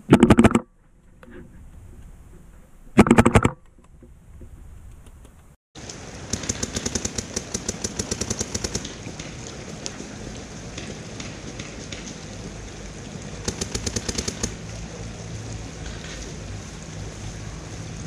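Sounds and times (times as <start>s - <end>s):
paintball marker rapid firing: 0.1s - 0.6s, 3.0s - 3.6s, 6.2s - 9.4s, 13.4s - 14.6s.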